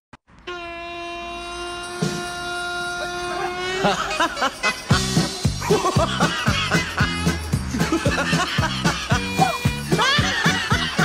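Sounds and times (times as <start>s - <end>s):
steady horn-like tone: 0.4s - 5.5s.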